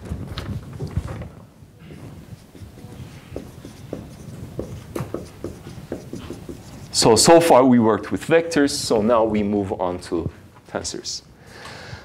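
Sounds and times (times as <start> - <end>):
marker squeaking on whiteboard: 1.8 - 7.4.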